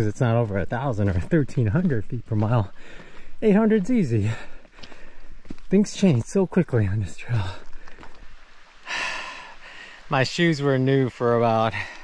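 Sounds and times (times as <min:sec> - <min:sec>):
man exhaling noisily: 0:08.8 - 0:10.1.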